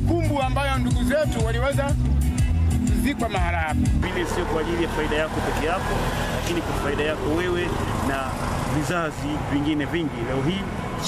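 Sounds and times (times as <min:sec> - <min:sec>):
man speaking: 0:03.0 - 0:05.9, 0:06.5 - 0:10.7.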